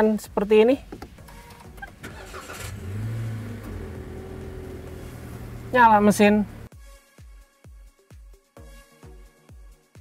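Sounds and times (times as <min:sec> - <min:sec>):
car engine revving and idling: 0:01.2 - 0:06.7.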